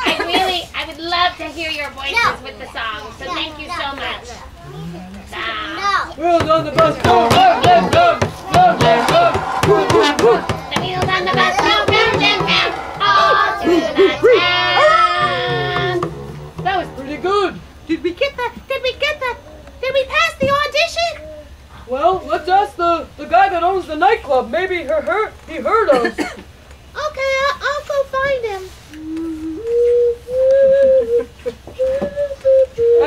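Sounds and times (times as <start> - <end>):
children's song with instruments: 6.4 - 17.9
high puppet voice sounds: 7.0 - 17.6
low held note: 7.0 - 17.9.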